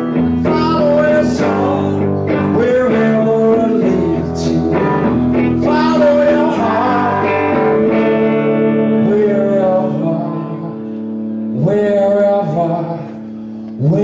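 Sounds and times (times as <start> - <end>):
rock band playing electric guitars: 0.0 - 13.8
man singing: 0.0 - 14.0.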